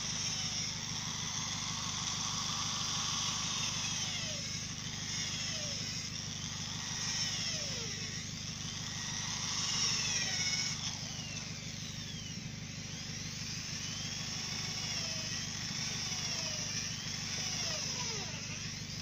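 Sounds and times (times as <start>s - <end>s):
electric drill whining: 0.0s - 19.0s
small engine running: 0.0s - 19.0s.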